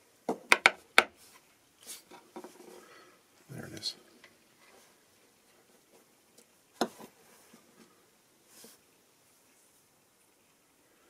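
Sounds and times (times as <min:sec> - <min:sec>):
soft rustle: 0:01.2 - 0:10.4.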